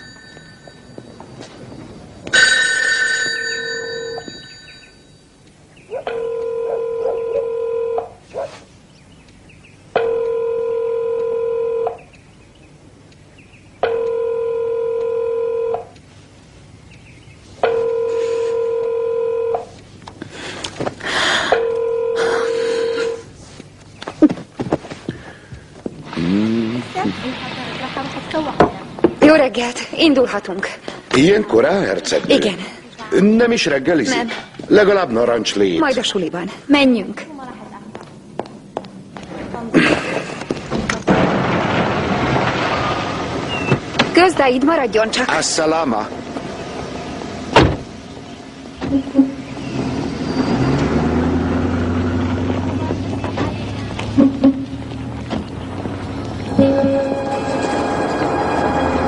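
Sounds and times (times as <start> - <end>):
electronic telephone ringing: 0.0 - 1.0, 2.4 - 5.2, 6.1 - 8.2, 10.0 - 12.1, 13.8 - 15.9, 17.6 - 19.7, 21.5 - 23.3
brief loud sound: 56.5 - 59.0.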